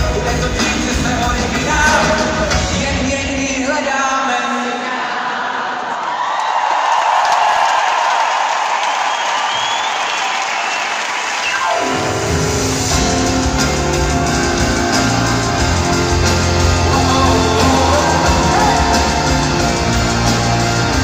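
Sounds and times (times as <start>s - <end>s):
loud rock band: 0.0s - 4.6s, 11.3s - 21.0s
crowd cheering and applause: 5.7s - 21.0s.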